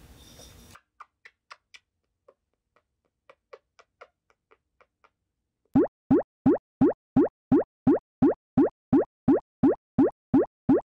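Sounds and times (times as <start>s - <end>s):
cartoon bloop sound effect: 5.8s - 10.9s.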